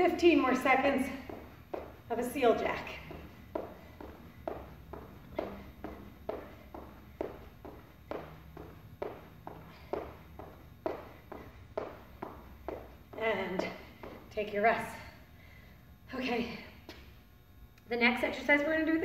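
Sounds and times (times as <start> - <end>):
feet landing on rubber floor: 1.0 - 14.3.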